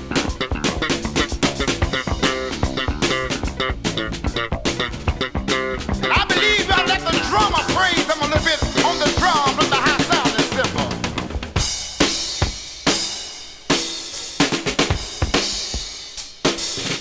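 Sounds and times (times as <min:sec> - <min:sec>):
drum kit hits: 0:00.0 - 0:17.0
soul gospel band playing: 0:00.0 - 0:17.0.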